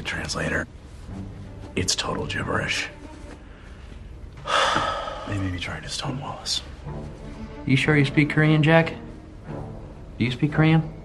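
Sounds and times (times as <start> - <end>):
person gasping: 4.4 - 5.5.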